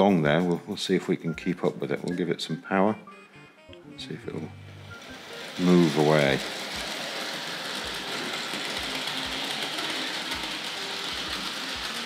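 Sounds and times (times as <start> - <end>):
model train motor whirring: 4.7 - 12.0.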